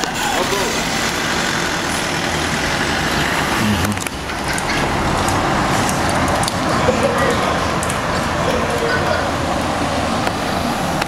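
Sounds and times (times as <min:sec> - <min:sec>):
vehicle driving by: 0:00.0 - 0:11.0
voices: 0:00.0 - 0:11.0.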